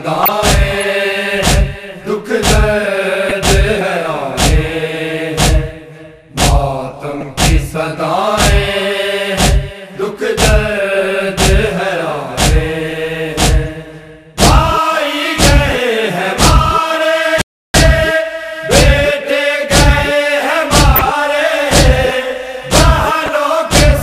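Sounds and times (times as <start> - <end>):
men chanting in unison: 0.0 - 24.0
hands slapping chests: 20.7 - 23.9.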